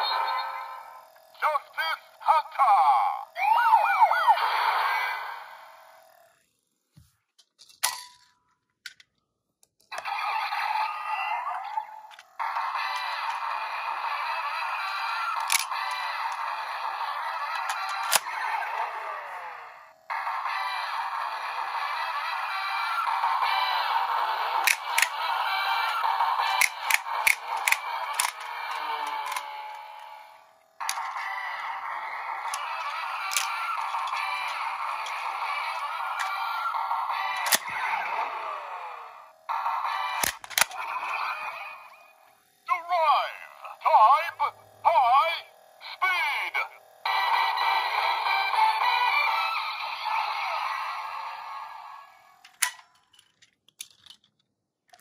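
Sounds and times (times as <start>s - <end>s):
toy belt electronic music: 0.0s - 6.5s, 9.9s - 54.0s
sharp plastic click: 37.4s - 37.7s.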